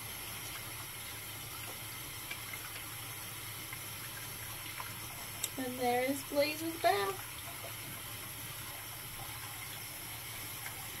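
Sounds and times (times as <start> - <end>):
faucet running into sink: 0.0 - 11.0.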